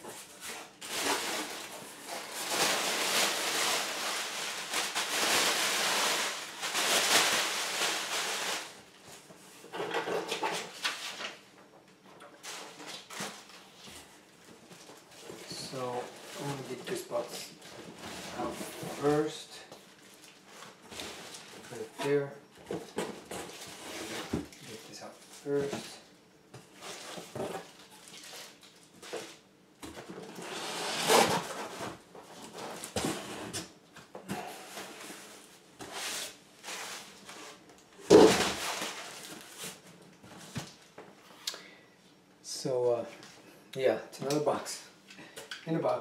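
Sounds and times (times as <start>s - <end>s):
cardboard and plastic rustling: 0.0s - 11.6s, 12.3s - 41.1s.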